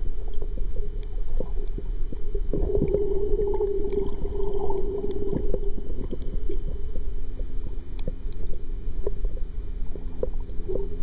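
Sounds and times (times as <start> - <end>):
muffled underwater rumble: 0.0 - 11.0
steady hum: 0.0 - 11.0.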